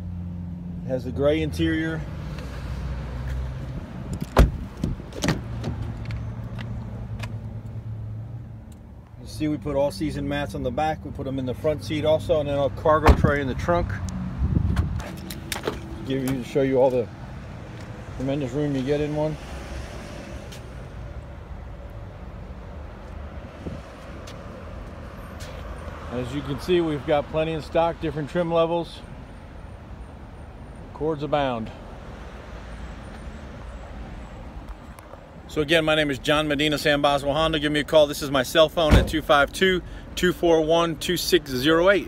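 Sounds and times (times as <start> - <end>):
road traffic rumble: 0.0 - 42.0
car door latch clicks: 4.1 - 5.8.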